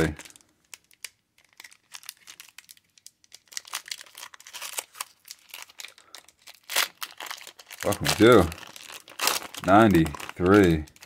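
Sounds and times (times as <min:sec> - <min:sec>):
foil wrapper crackling: 0:00.0 - 0:11.0.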